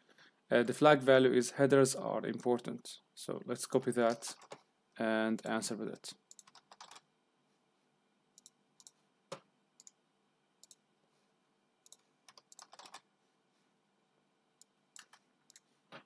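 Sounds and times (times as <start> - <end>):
computer keyboard keystrokes: 4.1 - 4.6, 6.3 - 7.0, 11.9 - 13.0, 15.0 - 15.7
mouse clicks: 8.4 - 10.0, 10.6 - 10.8, 11.8 - 13.0.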